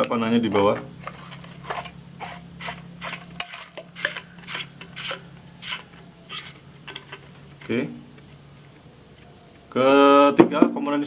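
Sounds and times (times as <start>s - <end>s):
valve threads clicking and scraping: 0.0s - 9.3s.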